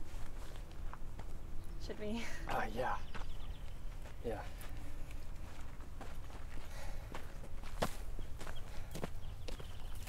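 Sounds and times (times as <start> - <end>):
footsteps on dirt trail: 0.0 - 10.0.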